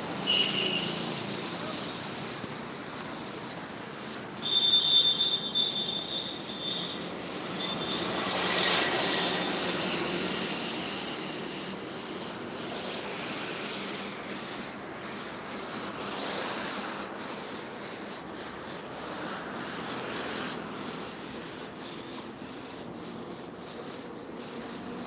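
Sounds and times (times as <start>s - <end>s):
street traffic rush: 0.0s - 25.0s.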